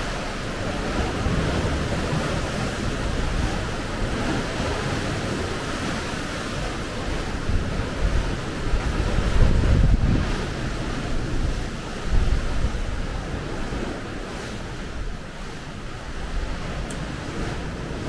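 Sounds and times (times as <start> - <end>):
sea surf on rocky shore: 0.0 - 18.0
wind on microphone: 0.0 - 18.0.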